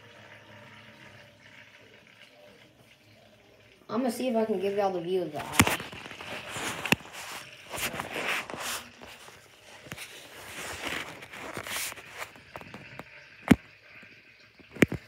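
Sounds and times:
tablet handling rubbing and rustling: 5.4s - 13.6s.

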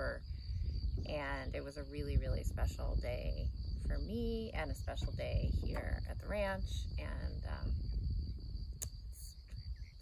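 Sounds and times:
crickets chirping: 0.0s - 10.0s
low rumble: 0.0s - 10.0s.

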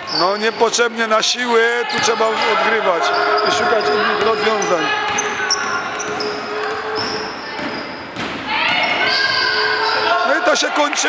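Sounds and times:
sneakers squeaking: 0.0s - 0.9s, 1.9s - 10.6s
echoing voices: 0.0s - 11.0s.

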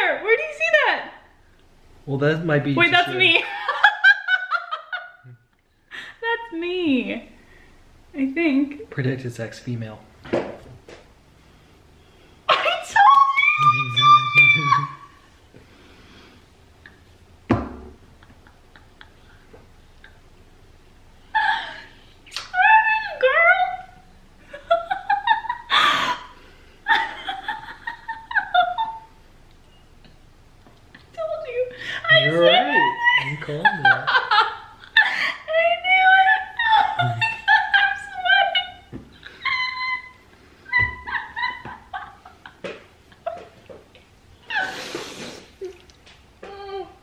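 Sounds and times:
woman crying: 12.5s - 15.2s, 21.3s - 29.1s, 31.0s - 42.5s, 46.4s - 47.0s
woman squealing excitedly: 12.5s - 15.2s, 22.4s - 23.9s, 31.2s - 34.4s, 35.0s - 42.2s.

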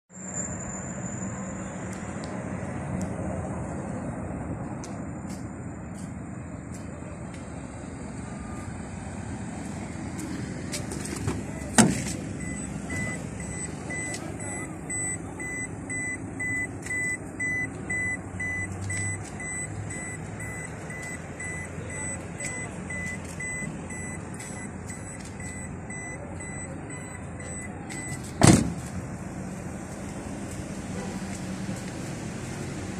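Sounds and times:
repeating warning beep: 12.4s - 28.3s
van door latch clunk: 28.4s - 28.9s.

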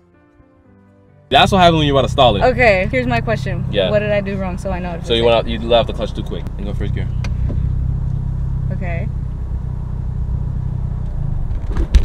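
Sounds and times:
car engine idling: 1.3s - 12.0s.

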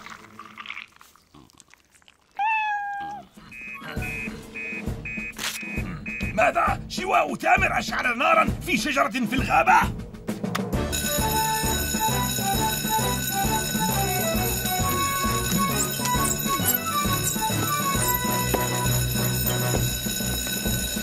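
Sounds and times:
upbeat music: 3.5s - 21.0s
electric alarm bells ringing: 10.9s - 21.0s.

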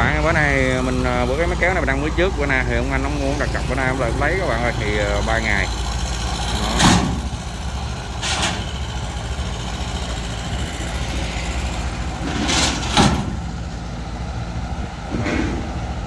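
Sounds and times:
engine idling: 0.0s - 16.0s
metal ramps clattering: 6.4s - 7.4s, 8.2s - 8.8s, 11.6s - 13.5s.

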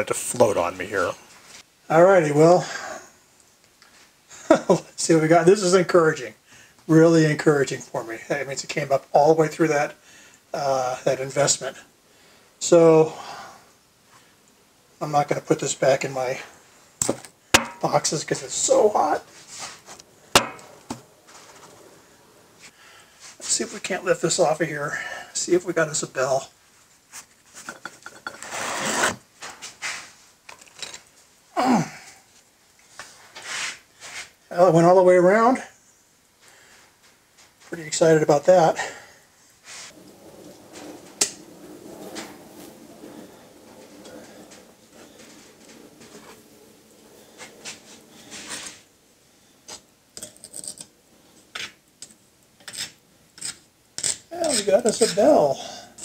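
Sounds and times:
flask scraping on molding sand: 27.1s - 30.2s
metal tools scraping in sand: 33.1s - 34.4s, 39.6s - 48.9s.

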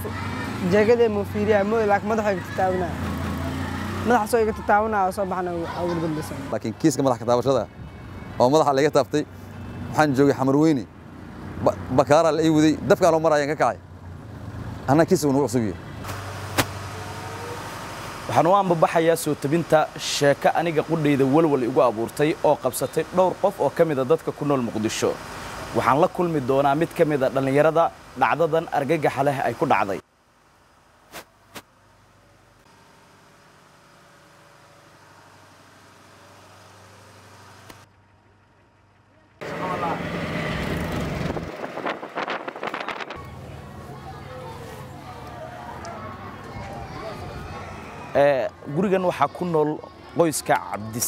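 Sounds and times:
small engine running: 32.7s - 44.0s.

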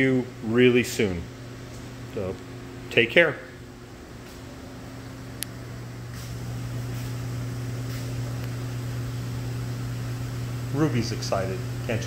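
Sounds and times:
low machinery hum: 0.0s - 12.0s.

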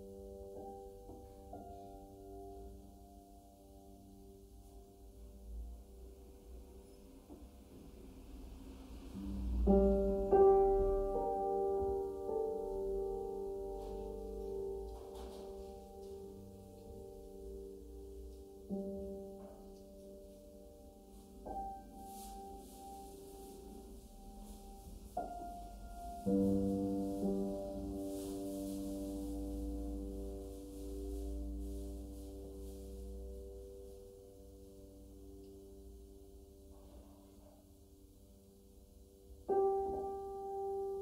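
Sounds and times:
piano chord ringing: 8.9s - 41.0s
faint rustle: 13.3s - 36.0s.

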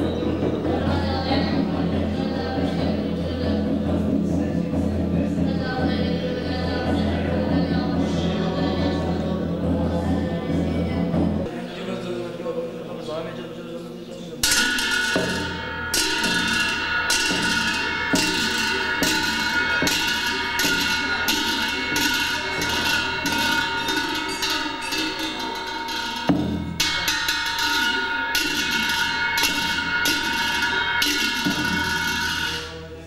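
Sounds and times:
brass cymbals clashing: 0.0s - 11.6s, 14.4s - 33.0s
low drum beats: 0.0s - 11.6s, 14.4s - 33.0s.

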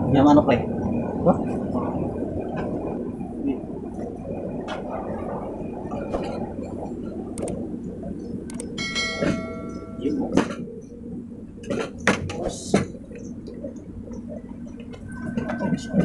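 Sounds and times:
steady background rumble: 0.0s - 16.0s
ringing chime: 8.8s - 10.2s.

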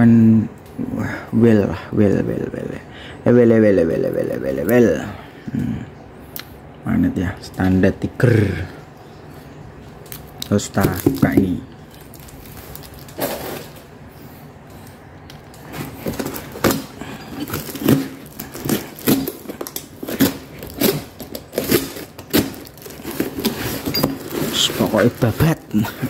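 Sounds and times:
plastic bag tearing and crinkling: 11.9s - 13.9s, 15.5s - 26.0s.

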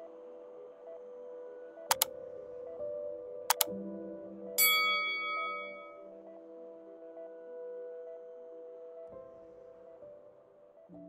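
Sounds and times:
soft ambient music drone: 0.0s - 11.0s
bright bell-like chime: 4.6s - 6.0s.

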